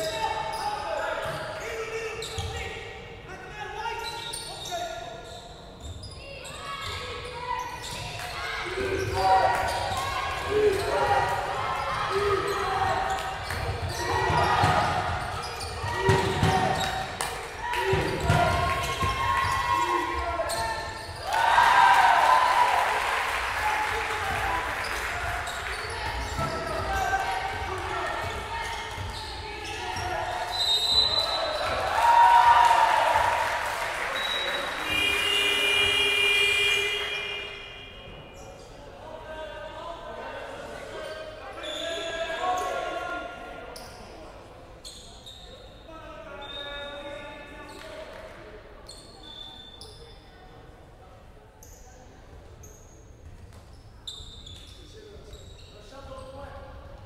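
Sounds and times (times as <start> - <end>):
people shouting in a hall: 6.3 - 38.3.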